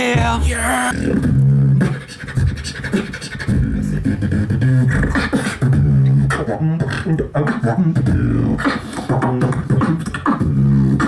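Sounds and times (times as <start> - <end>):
person beatboxing into a microphone: 0.0 - 11.0.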